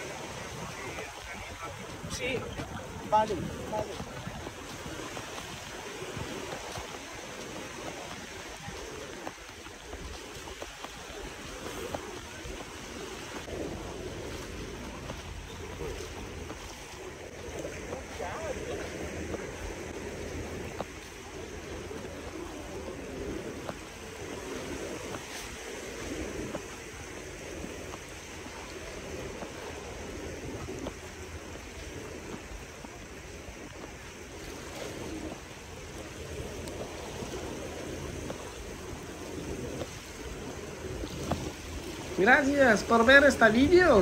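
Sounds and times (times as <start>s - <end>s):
waves washing up a sandy beach: 0.0s - 44.0s.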